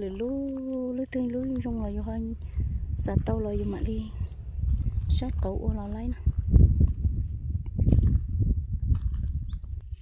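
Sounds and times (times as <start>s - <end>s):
wind rumbling on microphone: 0.0s - 10.0s.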